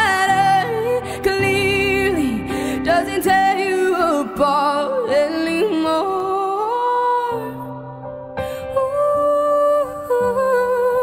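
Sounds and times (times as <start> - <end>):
woman singing wordlessly: 0.0 - 7.9, 8.8 - 11.0.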